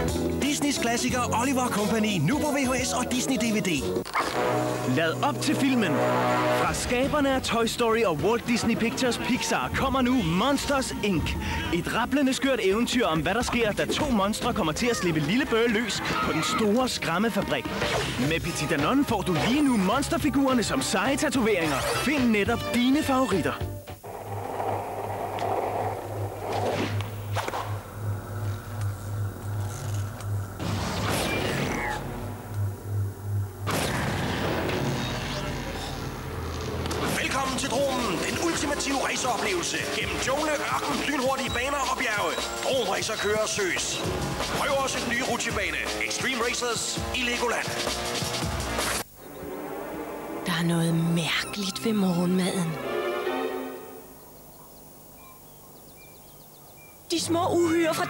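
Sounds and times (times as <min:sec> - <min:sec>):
low pulsing drone: 0:24.0 - 0:37.0
birds chirping: 0:40.2 - 0:44.1, 0:53.9 - 0:57.9.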